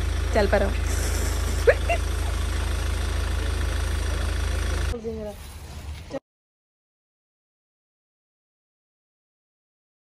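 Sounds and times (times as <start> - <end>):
car engine idling: 0.0 - 6.2.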